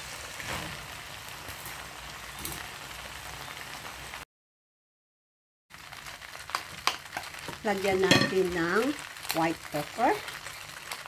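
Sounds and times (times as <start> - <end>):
food sizzling in a wok: 0.0 - 4.2, 5.7 - 11.0.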